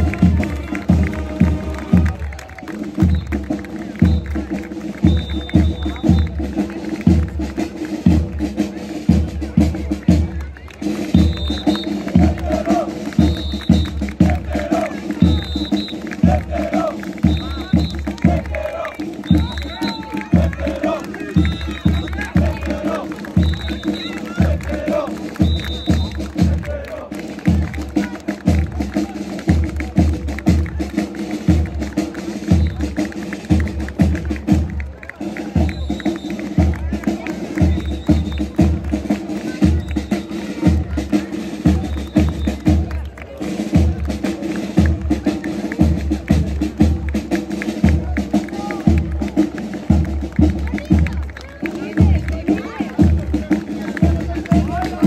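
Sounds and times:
bass drum beating: 0.0 - 2.4, 11.2 - 30.9, 44.8 - 55.0
marching band playing: 0.0 - 55.0.

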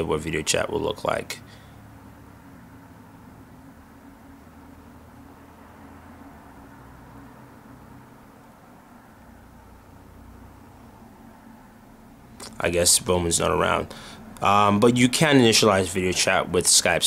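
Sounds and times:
faint low hum and hiss: 0.0 - 17.0.

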